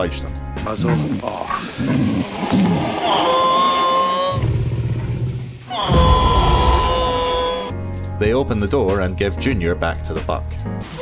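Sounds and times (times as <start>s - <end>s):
long held film score notes: 0.0s - 11.0s
low rumble: 4.4s - 7.6s.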